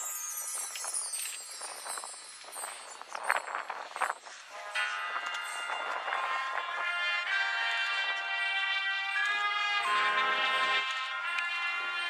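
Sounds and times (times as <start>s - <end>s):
marching band brass chords: 4.6s - 12.0s.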